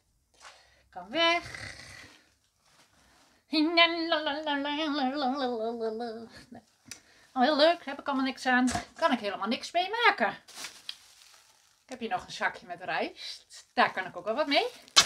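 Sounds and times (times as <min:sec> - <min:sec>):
woman singing wordless tune: 0:03.5 - 0:06.6.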